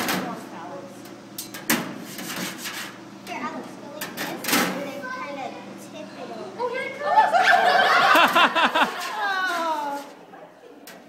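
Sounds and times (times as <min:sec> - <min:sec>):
children's voices: 0:03.2 - 0:07.9, 0:09.0 - 0:10.4.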